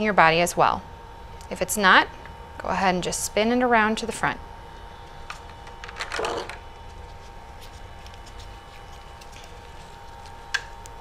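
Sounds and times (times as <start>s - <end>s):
faint steady hum: 0.0s - 11.0s
plastic tubing rustling: 5.2s - 11.0s.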